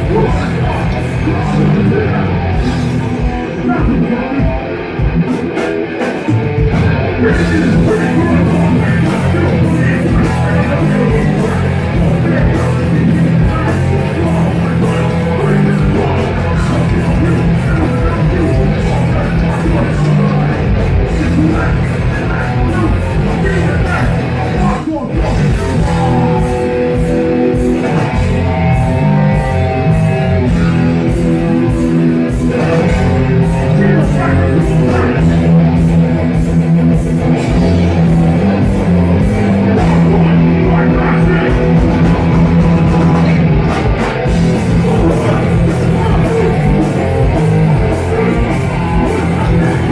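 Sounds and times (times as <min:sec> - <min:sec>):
singer shouting vocals: 0:00.0 - 0:05.3, 0:06.0 - 0:36.5, 0:37.2 - 0:49.9
bass guitar: 0:00.0 - 0:49.9
drums: 0:00.0 - 0:49.9
electric guitars: 0:00.0 - 0:49.9.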